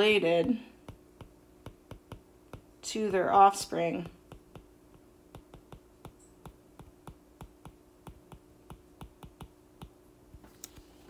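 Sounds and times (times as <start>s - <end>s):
stylus tapping on glass screen: 0.4s - 2.7s, 4.0s - 10.0s.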